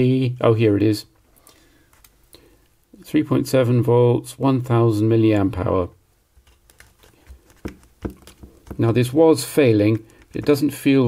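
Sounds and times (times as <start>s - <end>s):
light taps and rustles: 6.4s - 9.0s.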